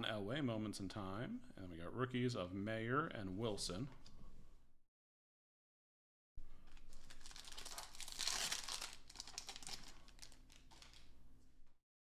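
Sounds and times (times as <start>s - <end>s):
card pack wrapper tearing: 6.7s - 11.1s.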